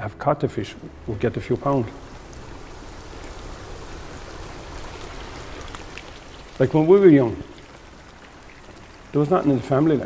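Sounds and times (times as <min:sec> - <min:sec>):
water hiss: 0:00.8 - 0:10.0.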